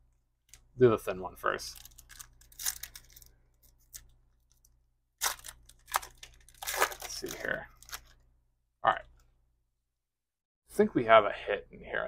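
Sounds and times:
card pack wrapper tearing: 0:01.7 - 0:04.6, 0:05.2 - 0:08.2.

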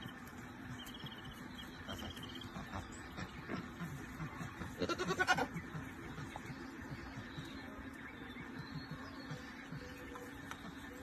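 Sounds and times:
young goat bleating: 0:04.6 - 0:05.5.

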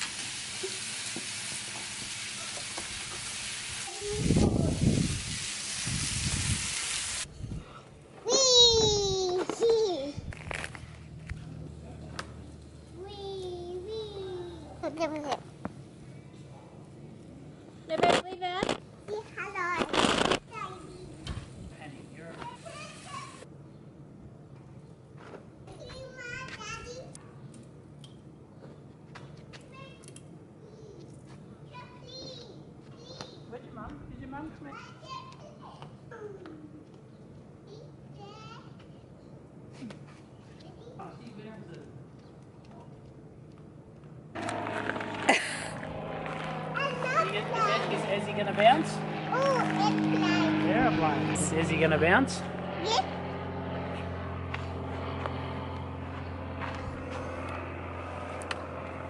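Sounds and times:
faint outdoor ambience: 0:00.0 - 0:59.0
toddler babbling: 0:08.2 - 0:10.2, 0:13.0 - 0:15.4, 0:49.3 - 0:50.5
toddler vocalising: 0:08.3 - 0:10.2
steady low hum: 0:08.9 - 0:19.2, 0:42.0 - 0:59.0.

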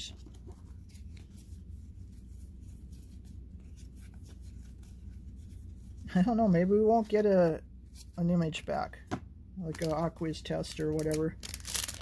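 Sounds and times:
cards rustling and flipping: 0:00.0 - 0:05.9, 0:09.6 - 0:12.0.

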